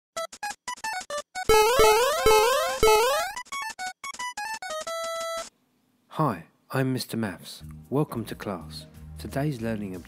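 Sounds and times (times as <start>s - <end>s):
rising sweeping game tones: 1.5s - 3.4s
short beeping game notes: 1.5s - 3.4s.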